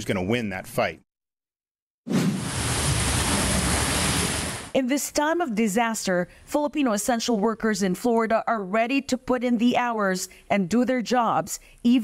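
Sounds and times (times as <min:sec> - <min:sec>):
wind and rain hiss: 0:02.4 - 0:04.8.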